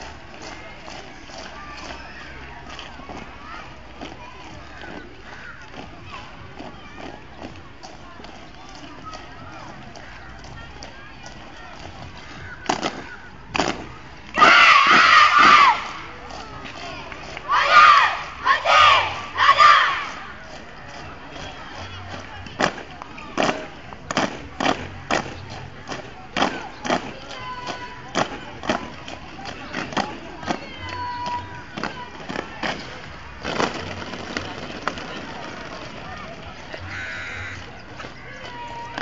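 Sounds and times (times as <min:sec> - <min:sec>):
boots stamping on brick paving: 0:00.0 - 0:18.0, 0:19.6 - 0:39.0.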